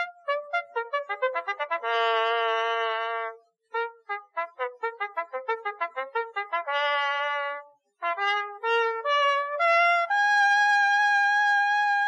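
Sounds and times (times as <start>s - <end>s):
trumpet melody: 0.0s - 12.0s.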